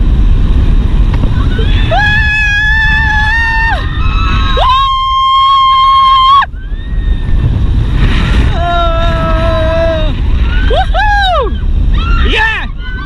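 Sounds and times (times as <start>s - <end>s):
wind buffeting microphone: 0.0s - 13.0s
rider screaming: 1.3s - 7.6s, 8.5s - 13.0s.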